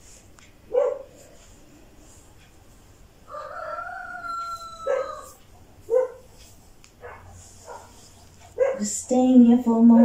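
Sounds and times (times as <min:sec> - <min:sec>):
animal calling: 0:03.3 - 0:06.2.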